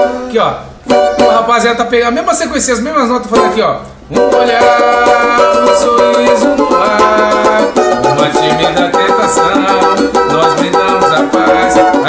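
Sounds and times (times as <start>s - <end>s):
banjo strummed: 0.0s - 1.5s, 3.3s - 12.0s
man singing: 3.4s - 12.0s.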